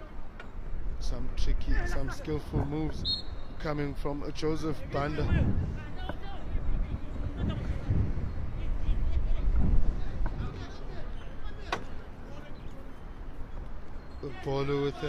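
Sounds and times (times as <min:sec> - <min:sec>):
distant shouts and voices: 0:00.0 - 0:15.0.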